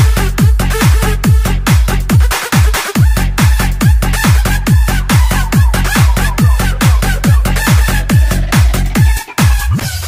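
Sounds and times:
heavy kick drum: 0.0s - 9.9s
high pitch-bending synth line: 3.8s - 9.4s.

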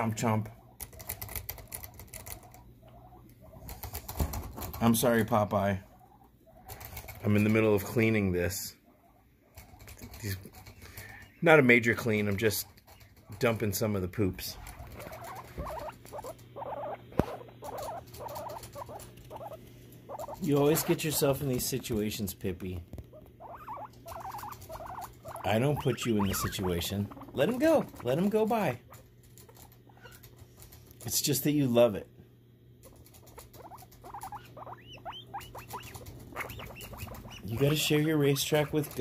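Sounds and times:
guinea pig stuttering calls: 0.0s - 31.9s, 32.7s - 39.0s.

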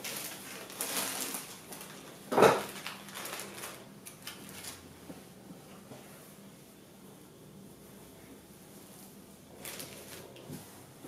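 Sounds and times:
plastic film rustling: 0.0s - 4.9s, 9.5s - 10.7s.

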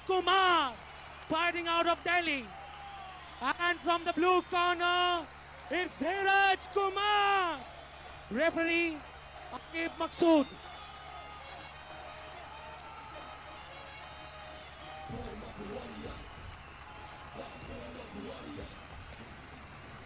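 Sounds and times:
ring announcer calling: 8.3s - 18.9s.

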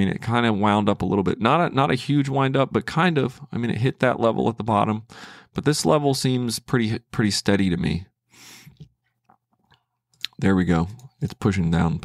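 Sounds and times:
man breathing softly: 5.1s - 5.6s, 8.3s - 8.9s.

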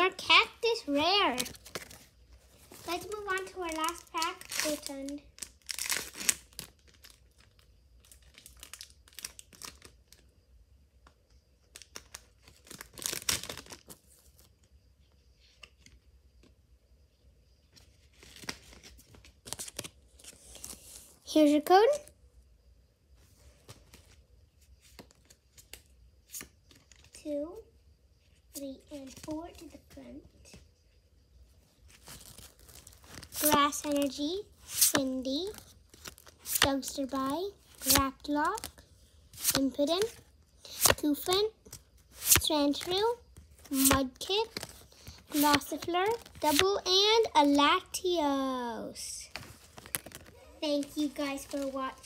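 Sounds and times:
trading cards rustling: 0.0s - 7.3s, 28.8s - 30.6s, 31.8s - 47.6s, 49.3s - 52.0s
wrapper tearing and crinkling: 2.8s - 10.2s, 11.7s - 14.0s, 31.9s - 33.5s, 35.8s - 36.6s, 49.4s - 52.0s.

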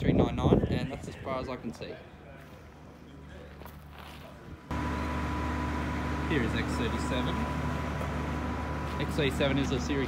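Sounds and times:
loud steady mechanical hum: 2.7s - 10.0s.

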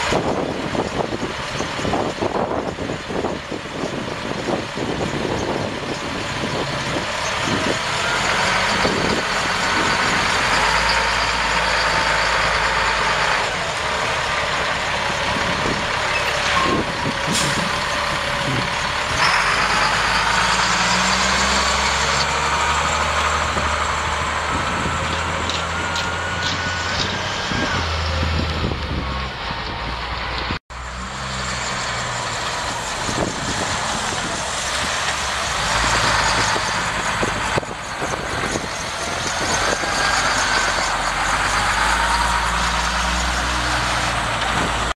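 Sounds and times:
diesel truck engine driving by: 0.0s - 44.9s.

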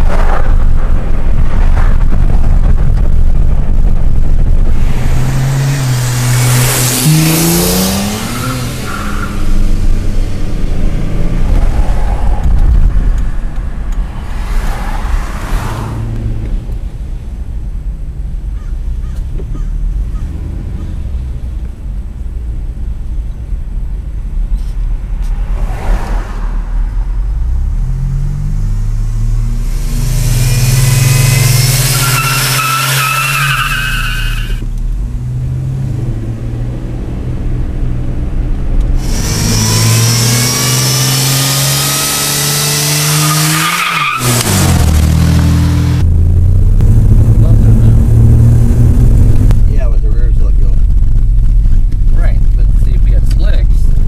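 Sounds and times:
car engine accelerating: 0.0s - 54.0s
tyre squeal: 29.8s - 34.6s.

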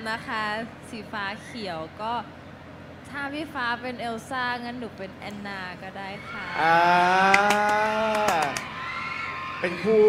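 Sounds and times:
held vocal aah: 6.4s - 8.6s
hand claps: 7.2s - 8.7s.

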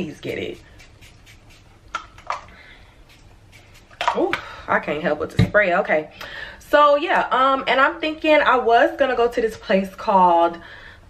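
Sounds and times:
body mist bottle spraying: 0.2s - 1.8s, 3.0s - 4.2s.

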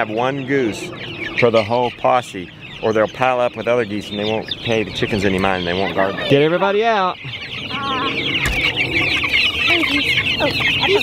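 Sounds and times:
chicks peeping: 0.0s - 11.0s.

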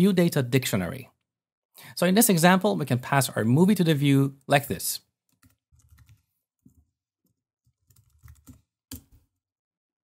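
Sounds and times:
computer keyboard typing: 5.3s - 6.9s, 7.6s - 9.3s.

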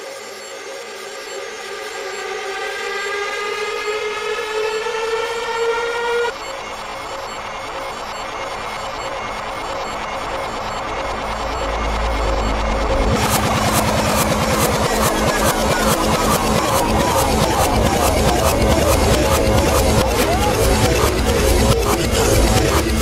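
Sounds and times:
reversed synth tone gliding upward: 0.9s - 6.3s, 11.7s - 23.0s.

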